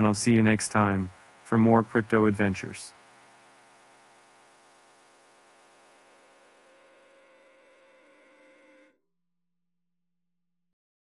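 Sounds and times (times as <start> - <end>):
faint buzzing drone: 0.0 - 9.0.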